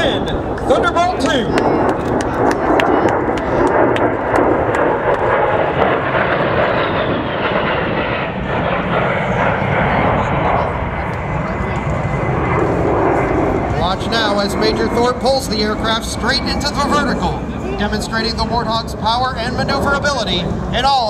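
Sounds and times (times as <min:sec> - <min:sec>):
jet aircraft flying past: 0:00.0 - 0:21.0.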